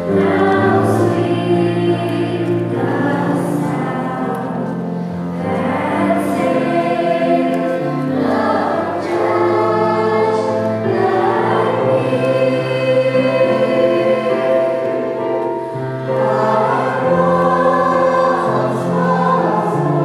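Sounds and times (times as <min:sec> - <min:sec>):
children's choir singing: 0:00.0 - 0:20.0.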